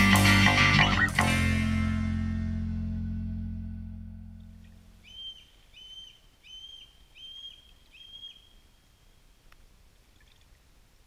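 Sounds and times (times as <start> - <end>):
bird whistling call: 5.0 - 8.6.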